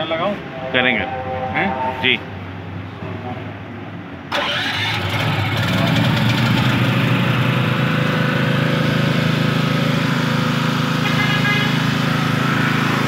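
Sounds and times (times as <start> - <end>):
generator engine starting and running: 4.2 - 13.0.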